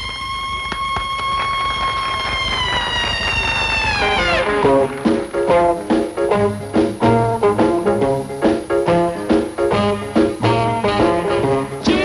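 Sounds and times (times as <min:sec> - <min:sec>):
swing beat: 0:00.0 - 0:12.0
plucked guitar: 0:04.1 - 0:12.0.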